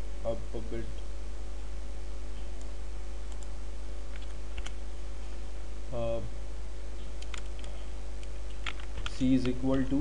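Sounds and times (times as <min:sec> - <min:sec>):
steady low hum: 0:00.0 - 0:10.0
computer keyboard clicks: 0:07.2 - 0:07.8, 0:08.5 - 0:10.0.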